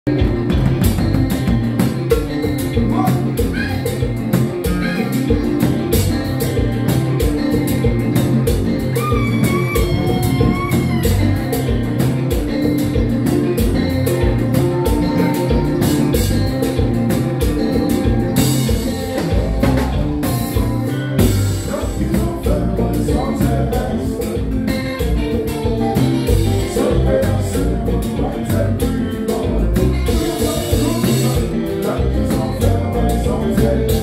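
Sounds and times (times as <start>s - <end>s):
drum kit steady beat: 0.0s - 34.0s
live band playing: 0.0s - 34.0s.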